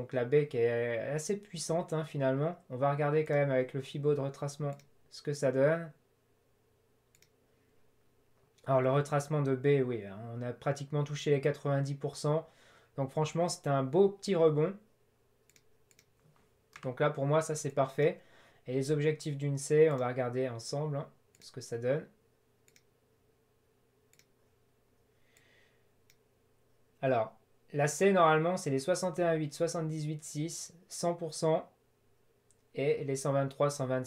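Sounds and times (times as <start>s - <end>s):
faint computer mouse clicks: 4.7s - 5.0s, 7.1s - 7.4s, 15.5s - 16.9s, 22.6s - 22.9s, 24.1s - 24.4s.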